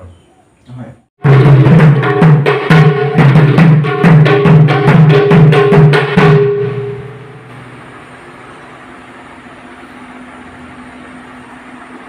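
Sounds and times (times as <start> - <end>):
barrel drum stroke ringing: 1.3 - 7.8.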